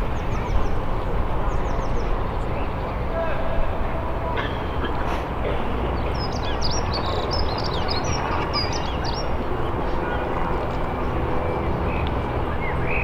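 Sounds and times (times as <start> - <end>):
birds chirping: 0.0 - 13.0
murmur of voices: 0.0 - 13.0.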